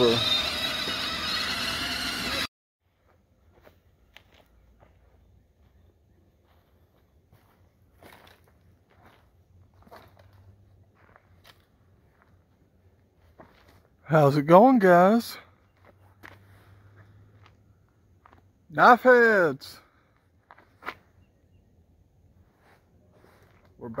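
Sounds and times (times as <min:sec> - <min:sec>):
toy buggy motor whining: 0:00.0 - 0:02.5
wheels rumbling over dirt: 0:00.0 - 0:02.5
footsteps crunching on dry leaves: 0:06.5 - 0:10.4.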